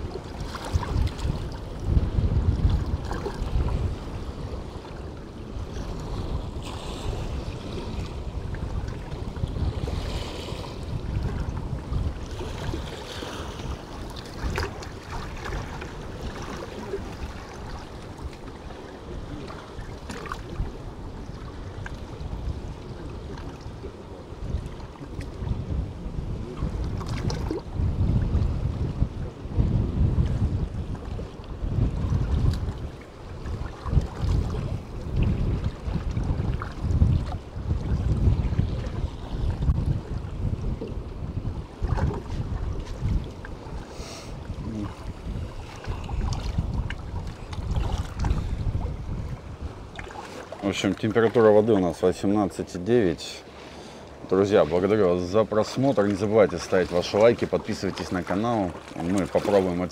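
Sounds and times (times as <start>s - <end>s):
wind buffeting microphone: 0.0s - 53.2s
choppy sea water: 0.0s - 59.9s.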